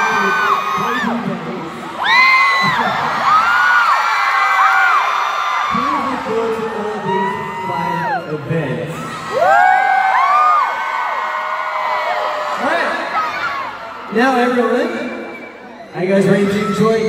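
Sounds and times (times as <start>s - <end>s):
crowd screaming and cheering: 0.0s - 17.0s.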